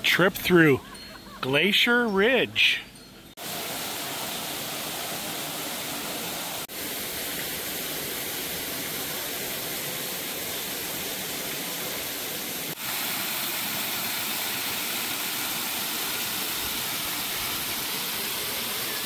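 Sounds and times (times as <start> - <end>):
waterfall splashing into pool: 3.4 - 19.0.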